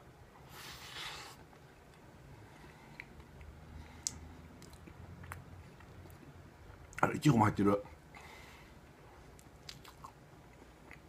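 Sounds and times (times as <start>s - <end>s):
person chewing soft sweet: 0.7s - 7.0s, 9.2s - 11.0s
soft wet mouth clicks: 3.0s - 6.2s, 9.4s - 10.2s.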